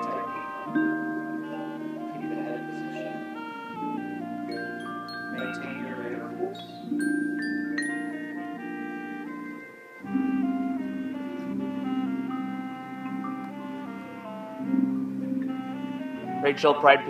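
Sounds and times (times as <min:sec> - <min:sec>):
marching band playing: 0:08.1 - 0:17.0.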